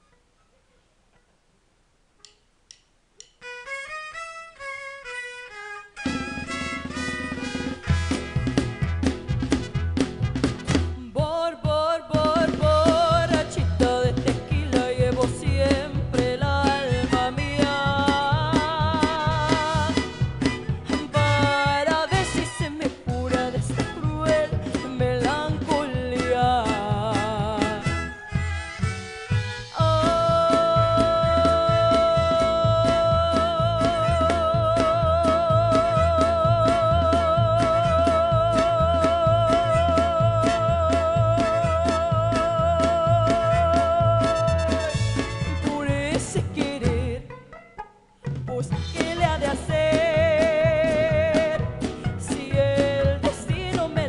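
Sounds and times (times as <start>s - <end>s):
strummed guitars: 3.2s - 54.0s
mariachi band playing: 3.4s - 11.2s, 12.2s - 54.0s
bass guitar line: 6.0s - 54.0s
woman singing: 11.0s - 20.2s, 20.8s - 28.0s, 29.7s - 44.9s, 45.5s - 47.3s, 48.5s - 54.0s
violins playing melody: 27.9s - 29.8s.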